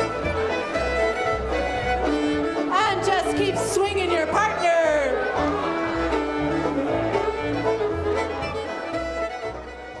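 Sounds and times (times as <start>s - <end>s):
fiddle melody: 0.0s - 10.0s.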